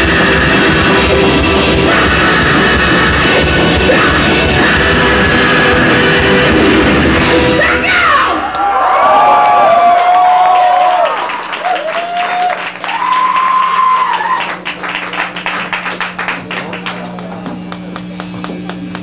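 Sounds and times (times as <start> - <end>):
live metal band playing: 0.0 - 8.3
audience cheering and whistling: 8.4 - 14.8
audience clapping: 8.4 - 19.0.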